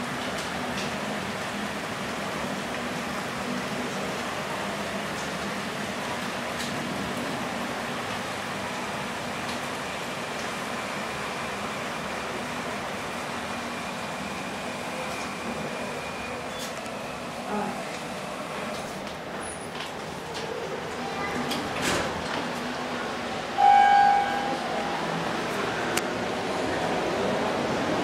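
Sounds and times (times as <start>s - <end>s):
elevator running noise: 0.0s - 28.0s.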